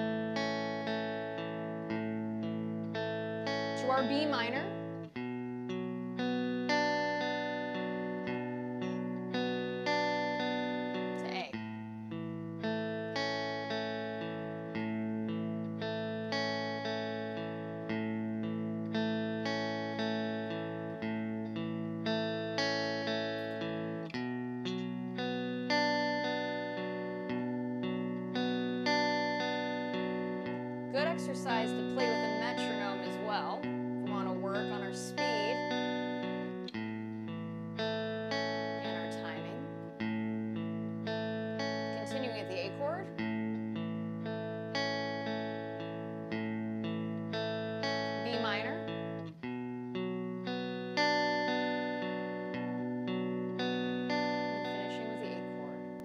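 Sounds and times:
clean electric guitar picking chords: 0.0 - 56.0.

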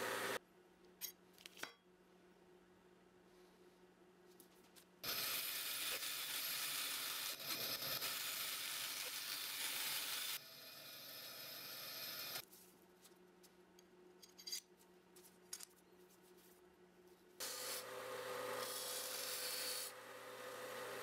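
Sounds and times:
bench power saw cutting: 17.4 - 21.0.

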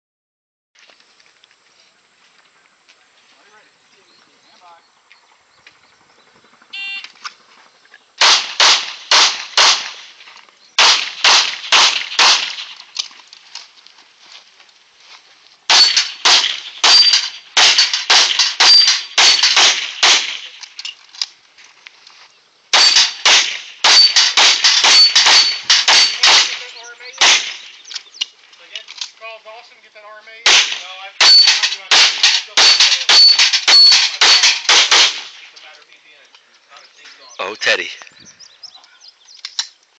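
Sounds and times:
pistol shots: 8.2 - 10.2, 10.8 - 12.8, 15.7 - 20.6, 22.7 - 27.9, 30.4 - 35.5
steel targets ringing: 15.7 - 19.8, 22.8 - 23.2, 23.8 - 26.6, 31.2 - 35.1.

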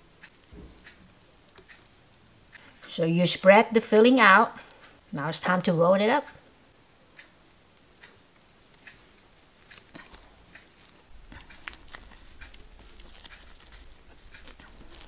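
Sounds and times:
bean curd sheet crinkling: 0.2 - 3.0, 8.4 - 15.0.

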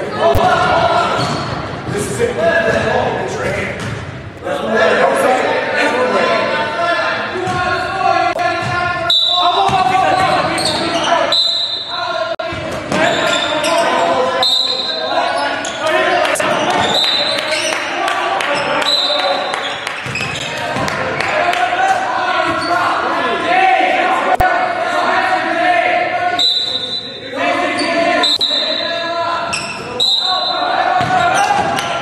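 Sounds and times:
sneakers squeaking: 1.0 - 4.4, 8.4 - 20.9, 22.4 - 23.2, 26.4 - 32.0
basketball bouncing: 2.7 - 4.1, 31.0 - 31.9
players calling out: 4.4 - 32.0.

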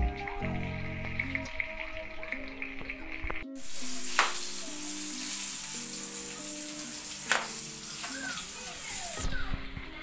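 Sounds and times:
meat sizzling in hot oil: 0.7 - 9.8.

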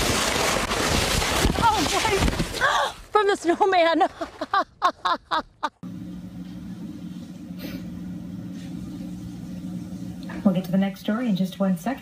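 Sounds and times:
person laughing: 4.2 - 5.8
steady low hum: 5.8 - 12.0.

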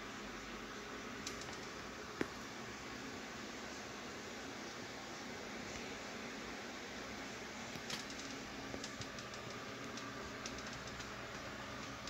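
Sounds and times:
steady background hiss: 0.0 - 12.0
faint clicks and ticks: 1.2 - 2.4, 7.7 - 12.0.

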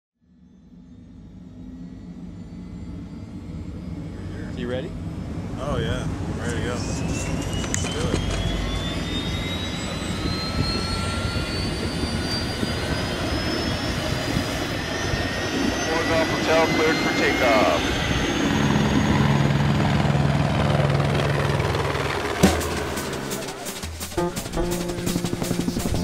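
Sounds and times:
helicopter turbine engine whine: 0.2 - 26.0.

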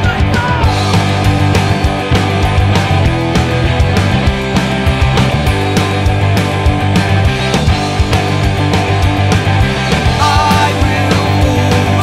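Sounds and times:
drum hits: 0.0 - 12.0
ska-punk band playing: 0.0 - 12.0.

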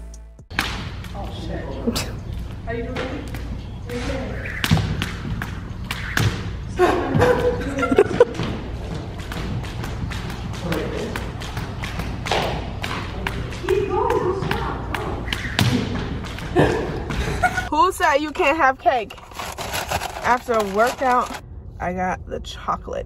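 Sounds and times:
jump rope slapping wooden floor: 4.6 - 17.3.

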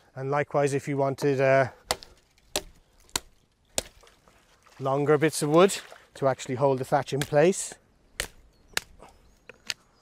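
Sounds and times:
blade chopping willow stem: 1.8 - 4.2, 7.0 - 7.6, 8.2 - 9.0.

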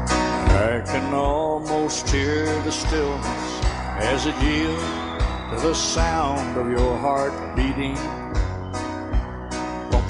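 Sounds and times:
country music guitar melody: 0.0 - 10.0
steady beat: 2.7 - 8.6.

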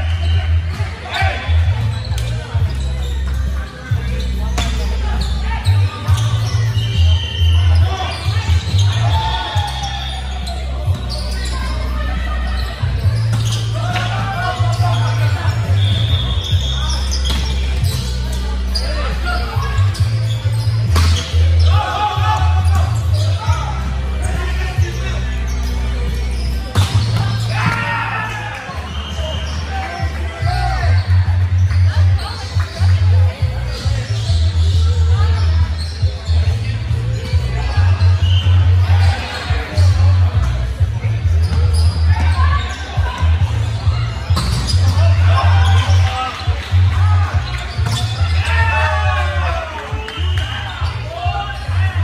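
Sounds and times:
players calling out: 0.0 - 52.0.

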